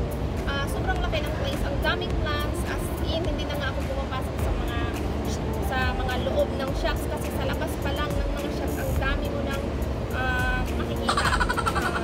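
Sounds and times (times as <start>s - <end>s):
background music: 0.0s - 12.0s
city traffic rumble: 0.0s - 12.0s
woman talking: 0.4s - 12.0s.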